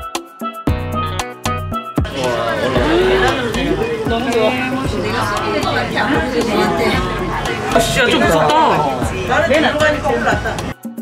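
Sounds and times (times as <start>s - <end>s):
indistinct chatter of voices: 2.1s - 10.9s.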